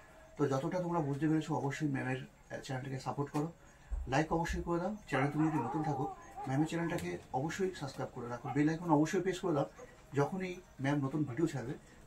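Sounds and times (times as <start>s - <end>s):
man talking: 0.4s - 11.8s.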